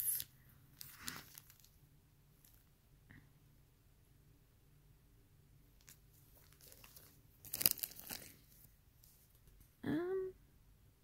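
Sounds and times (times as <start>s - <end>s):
plastic package crinkling: 0.0s - 1.8s, 5.8s - 9.3s.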